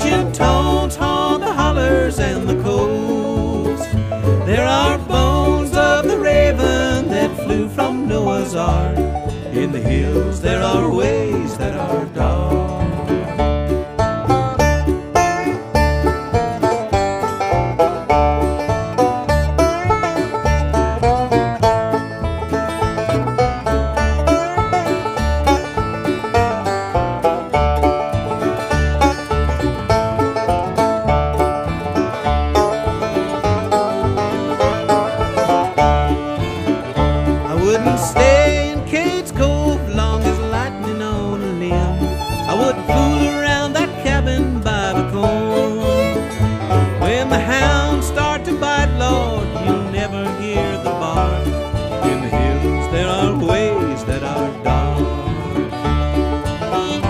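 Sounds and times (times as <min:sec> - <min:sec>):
banjo: 0:00.0 - 0:57.0
bass beat: 0:00.0 - 0:57.0
guitar picking: 0:00.0 - 0:57.0
mandolin: 0:00.0 - 0:57.0.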